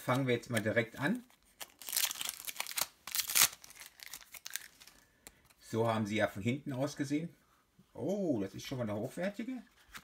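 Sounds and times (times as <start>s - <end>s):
foil pack crinkling and tearing: 1.4s - 5.0s.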